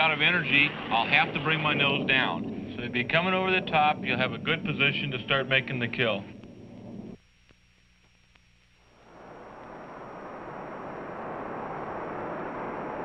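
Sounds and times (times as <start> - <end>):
jet aircraft roar: 0.0 - 7.2, 9.0 - 13.0
faint low hum: 0.0 - 13.0.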